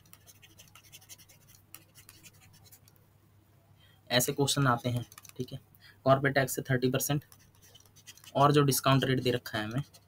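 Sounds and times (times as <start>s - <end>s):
stylus scratching on tablet: 0.0s - 2.9s, 4.2s - 5.5s, 6.9s - 10.0s.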